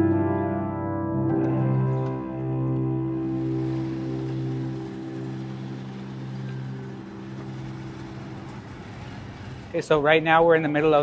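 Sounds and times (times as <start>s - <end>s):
background music sustained chords: 0.0s - 11.0s
faint street noise: 3.2s - 11.0s
man speaking: 9.8s - 11.0s.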